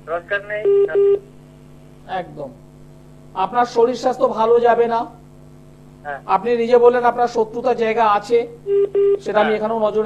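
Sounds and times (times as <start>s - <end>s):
short telephone line beeps: 0.6s - 1.2s, 8.7s - 9.2s
person speaking: 9.2s - 10.0s.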